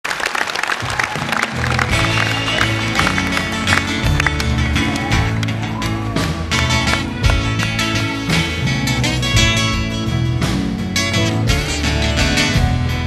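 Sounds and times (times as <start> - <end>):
audience applause: 0.0 - 8.7
crowd noise: 0.0 - 13.0
live band playing: 0.7 - 13.0
bass and acoustic guitar: 1.2 - 13.0.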